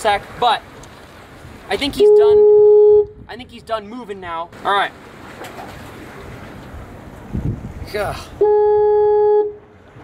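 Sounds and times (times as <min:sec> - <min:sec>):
low wind rumble: 0:00.2 - 0:10.0.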